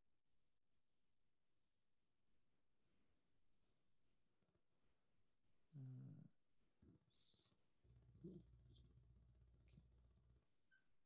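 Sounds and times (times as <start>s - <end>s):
faint keyboard clicks: 7.4s - 10.8s.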